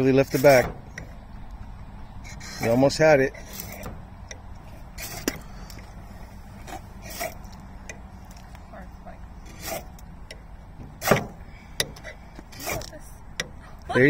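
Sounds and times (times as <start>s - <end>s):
low steady hum: 0.0s - 14.0s
ferro rod scraped with striker: 5.0s - 5.4s, 6.6s - 7.6s, 9.5s - 10.0s, 12.4s - 13.0s.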